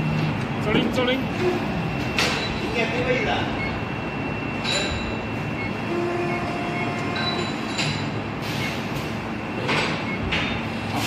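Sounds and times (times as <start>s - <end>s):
machine rumble: 0.0s - 11.0s.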